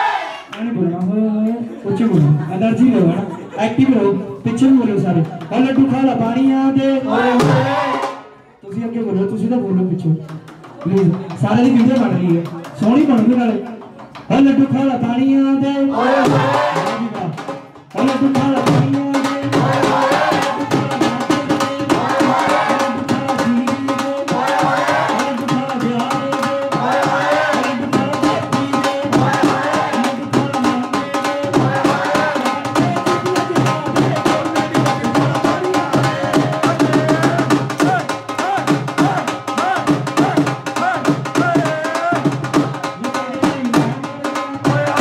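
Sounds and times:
dhol drumming: 3.8 - 8.2, 10.2 - 15.0, 16.0 - 45.0
people singing folk couplets: 15.9 - 17.0, 19.2 - 45.0.

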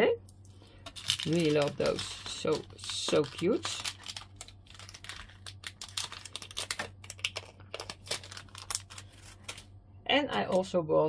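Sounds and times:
plastic packaging clicks and crinkles: 0.8 - 9.7.

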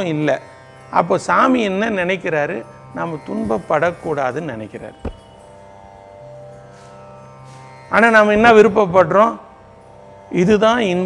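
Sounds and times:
soft carnatic music: 0.0 - 11.0.

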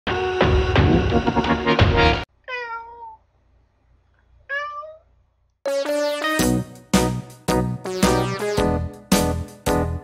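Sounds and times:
music: 0.1 - 2.3, 5.7 - 10.0
cat meowing: 2.4 - 3.2, 4.4 - 5.1.

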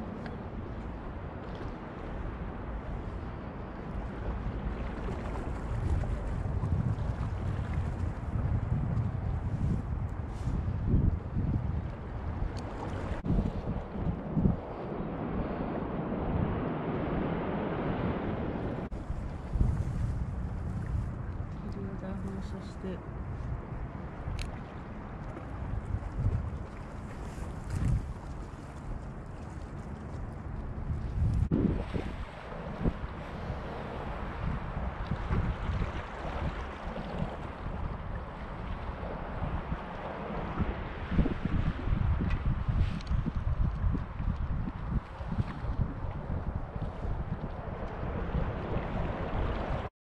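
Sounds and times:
wind buffeting microphone: 0.0 - 49.9.

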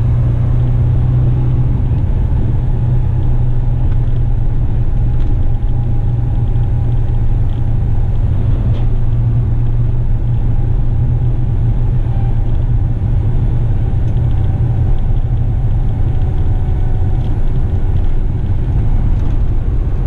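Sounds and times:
diesel truck engine drone: 0.0 - 20.0
road noise: 0.0 - 20.0.

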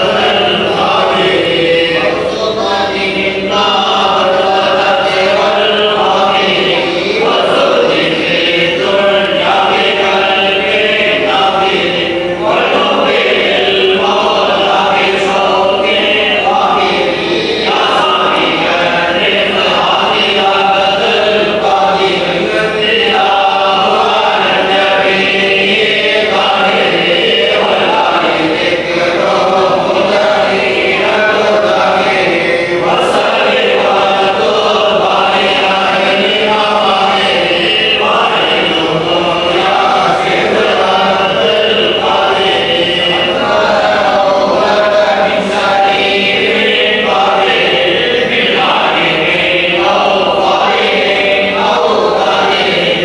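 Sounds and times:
men chanting in unison: 0.0 - 53.0.

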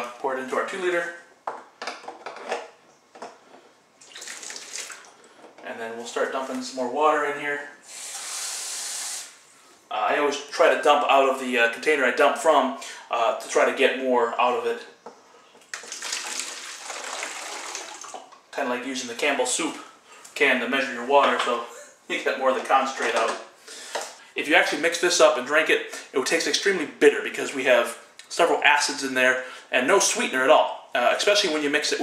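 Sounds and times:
water pouring: 4.0 - 5.2, 15.7 - 18.3
water hissing from tap: 7.9 - 9.4, 15.8 - 18.2.

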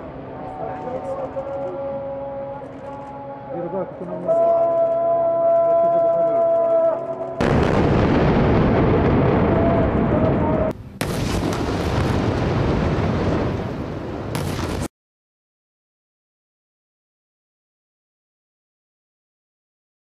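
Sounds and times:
explosion roaring: 7.4 - 14.9.

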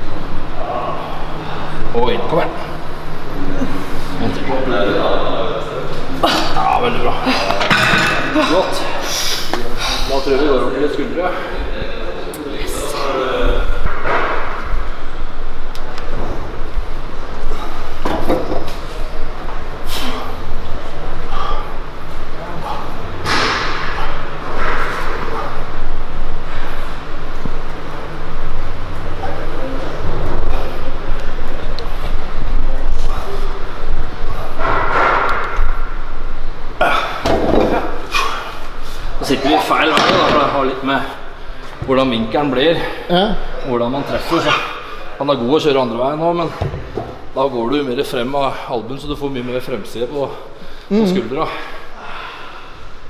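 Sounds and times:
steady background noise: 0.0 - 53.0.

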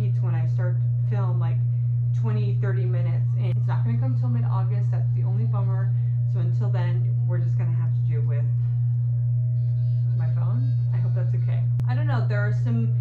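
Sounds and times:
woman talking: 0.0 - 9.0, 9.6 - 13.0
low electrical hum: 0.0 - 13.0.

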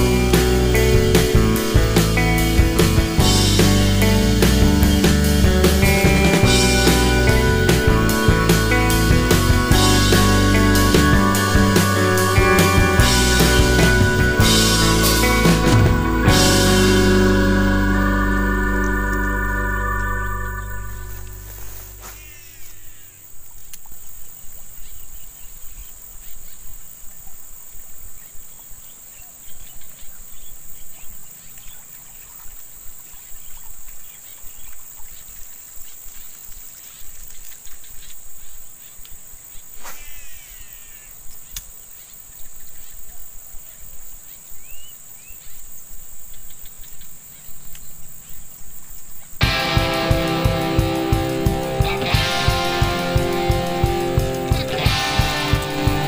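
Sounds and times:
organ music: 0.0 - 22.3, 49.4 - 56.0
high chirps: 0.0 - 23.2
insects buzzing: 0.0 - 56.0
low rumble: 12.4 - 22.1.

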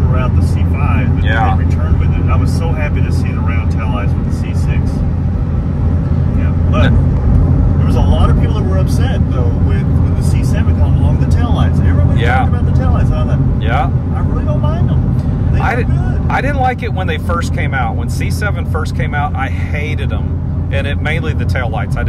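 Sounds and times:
car engine and road drone: 0.0 - 22.0.

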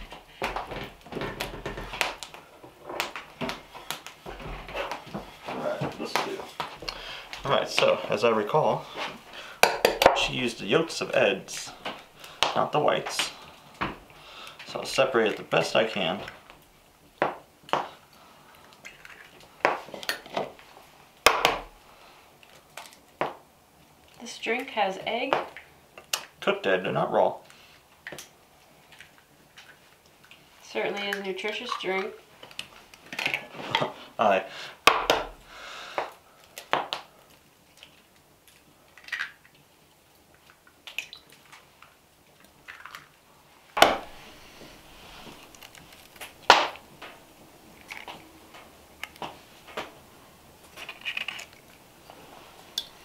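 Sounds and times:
eggshells knocking on ceramic bowl: 9.6 - 10.3.

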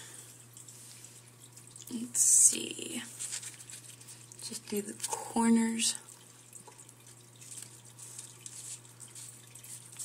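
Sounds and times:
faint ticks and rustles: 0.3 - 10.0.

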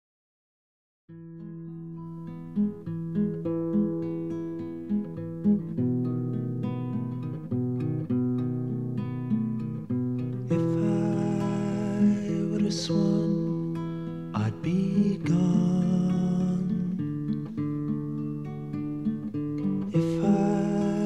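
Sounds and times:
acoustic guitar plucking: 1.1 - 21.0.

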